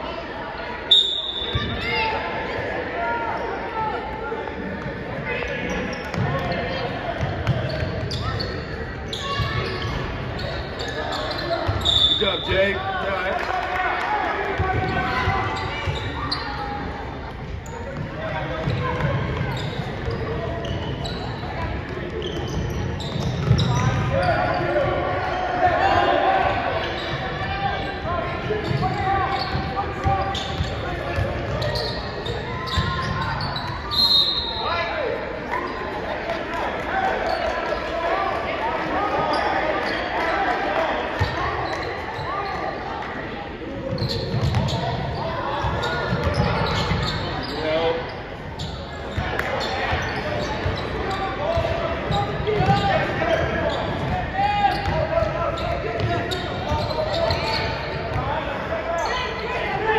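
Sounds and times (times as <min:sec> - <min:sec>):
voices echoing in gym: 0:00.0 - 0:59.9
shoe squeak: 0:00.9 - 0:02.0, 0:07.4 - 0:12.8, 0:14.8 - 0:16.8, 0:17.6 - 0:25.4, 0:26.7 - 0:35.0, 0:43.9 - 0:58.2.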